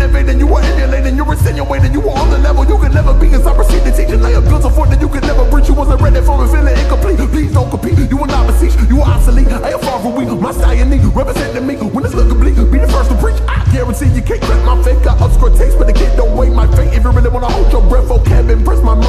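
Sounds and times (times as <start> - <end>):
deep bass: 0.0 - 19.0
rapping over a beat: 0.0 - 19.0.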